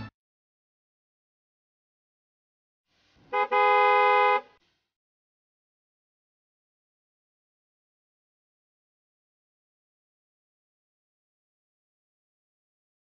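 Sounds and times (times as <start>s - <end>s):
horn honking: 3.3s - 4.6s.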